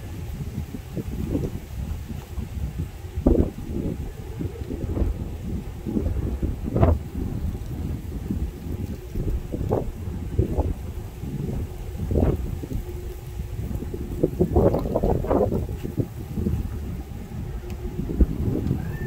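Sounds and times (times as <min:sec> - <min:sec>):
freight train cars rumbling: 0:00.0 - 0:19.0
wind buffeting microphone: 0:00.0 - 0:19.0.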